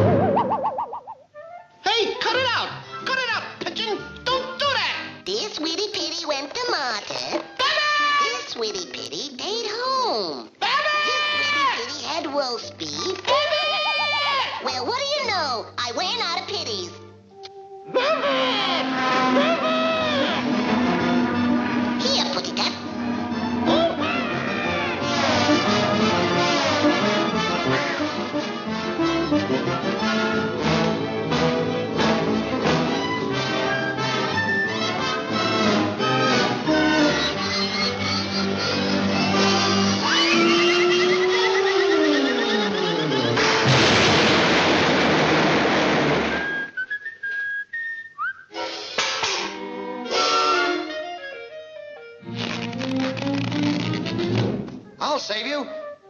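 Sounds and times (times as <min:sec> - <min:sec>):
cartoon cat yelling: 0:07.6 - 0:08.5, 0:10.6 - 0:12.0, 0:13.2 - 0:14.8, 0:17.9 - 0:20.4, 0:40.0 - 0:41.5
orchestral cartoon music: 0:17.1 - 0:44.0, 0:48.5 - 0:56.0
whistled tune: 0:40.0 - 0:43.4, 0:46.3 - 0:48.6
cartoon anvil crash: 0:43.4 - 0:46.7.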